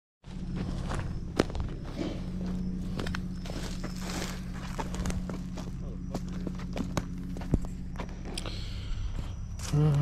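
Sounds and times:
footsteps on dry leaves: 0.2 - 8.3
steady low hum: 0.2 - 10.0.

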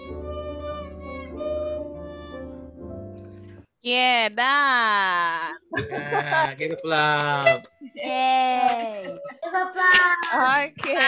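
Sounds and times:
slow violin melody: 0.0 - 3.6.

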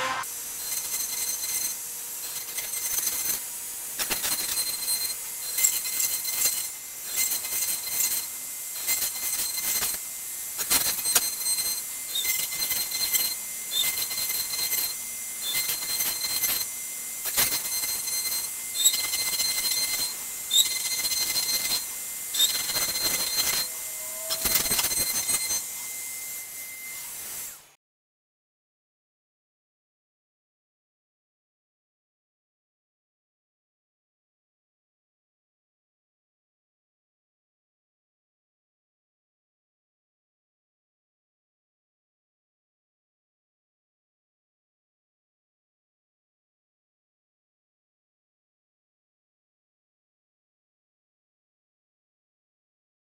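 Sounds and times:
router bit cutting wood: 0.0 - 27.8
trim router motor whine: 0.0 - 27.8.

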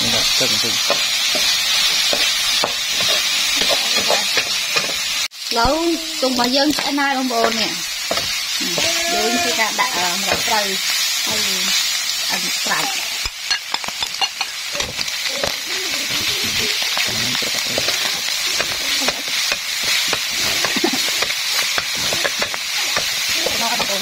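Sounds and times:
hot oil sizzling in a wok: 0.0 - 24.0
metal spatula scraping a pan: 0.8 - 5.1, 12.6 - 24.0.

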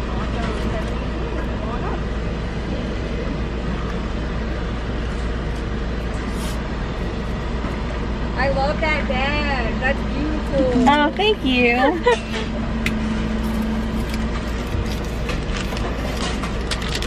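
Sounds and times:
car idling rumble: 0.0 - 17.0.

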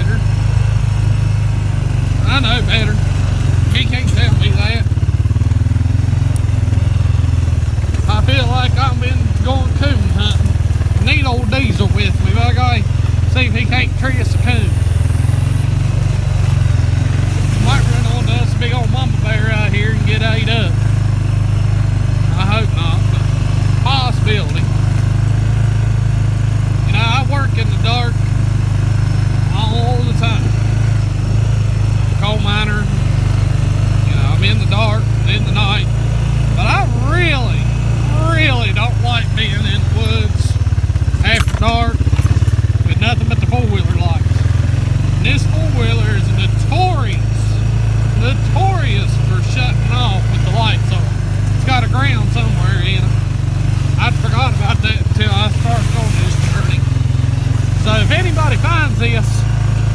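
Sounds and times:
man talking: 0.0 - 0.4, 2.0 - 5.0, 7.9 - 15.0, 16.9 - 20.9, 22.2 - 24.8, 26.8 - 28.3, 29.5 - 30.7, 32.0 - 33.2, 34.0 - 40.6, 41.2 - 42.2, 42.8 - 44.5, 45.1 - 53.2, 53.9 - 57.0, 57.6 - 59.6
atv engine droning: 0.0 - 59.9.

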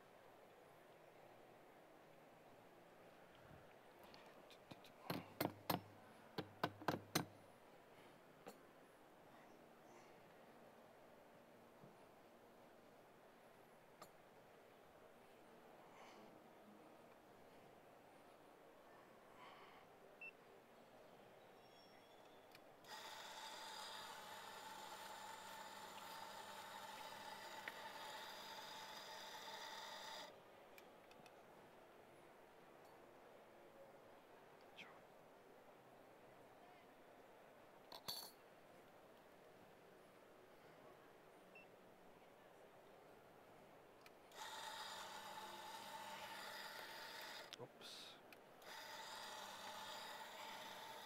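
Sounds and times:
coffee grinder whining: 22.9 - 30.3, 44.3 - 47.5, 48.6 - 51.0.

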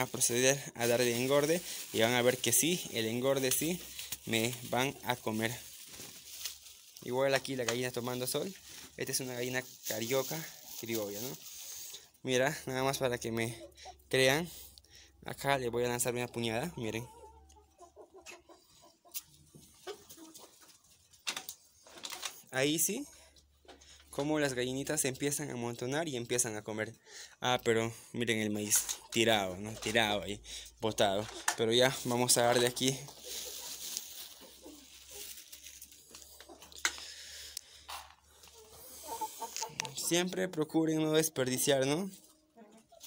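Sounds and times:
chickens clucking softly: 15.8 - 21.0, 38.3 - 40.4, 41.9 - 43.0
chickens pecking at feed: 17.0 - 22.4, 31.2 - 40.1.

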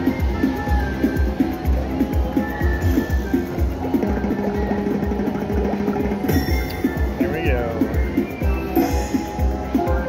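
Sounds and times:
slot machine bonus music: 4.4 - 7.8, 8.5 - 10.0.

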